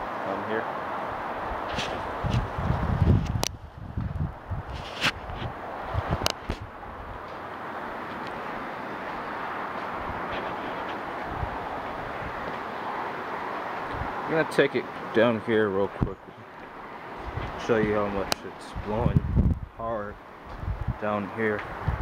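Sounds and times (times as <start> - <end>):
strong gusty wind: 0.0 - 22.0
wind buffeting microphone: 1.1 - 12.6, 13.8 - 14.4, 15.7 - 16.4, 17.1 - 22.0.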